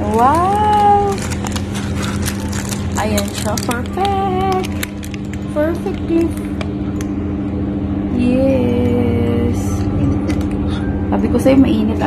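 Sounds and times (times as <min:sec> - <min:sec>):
paper baking liner crinkling: 0:00.0 - 0:06.6
steady low hum: 0:00.0 - 0:12.0.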